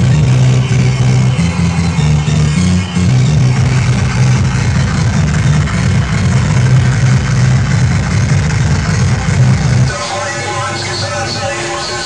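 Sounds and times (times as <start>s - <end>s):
electronic dance music: 0.0s - 12.0s
heavy pulsing bass line: 0.0s - 12.0s.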